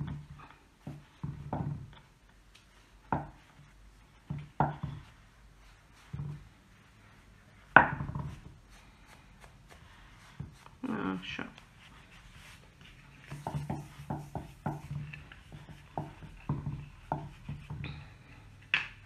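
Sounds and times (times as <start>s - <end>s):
handling knocks and soft thumps: 0.0s - 8.8s, 11.5s - 19.0s.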